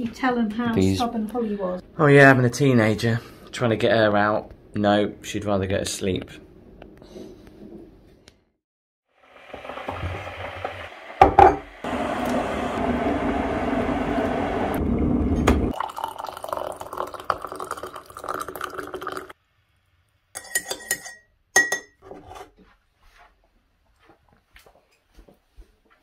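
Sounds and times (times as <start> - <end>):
hot water pouring into mug: 9.2 - 19.4
teaspoon clinking against mug: 20.4 - 22.0.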